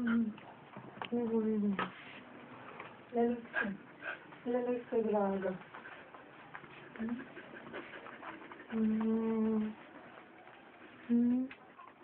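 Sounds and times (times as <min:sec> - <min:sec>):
dog panting: 0:03.2 - 0:12.0
dog small vocal noises: 0:06.8 - 0:12.0.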